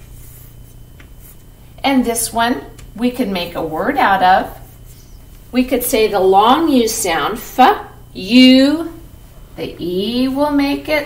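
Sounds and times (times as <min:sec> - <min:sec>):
chalk scratching on chalkboard: 0:00.0 - 0:01.4, 0:04.4 - 0:05.3.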